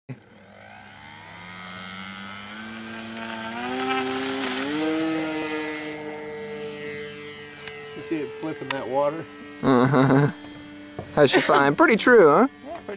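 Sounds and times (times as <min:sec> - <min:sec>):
model plane motor whine: 0:00.1 - 0:12.9.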